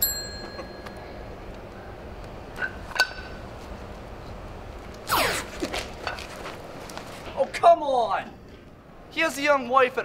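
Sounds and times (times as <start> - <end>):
bright metallic ding: 0.0 - 1.1.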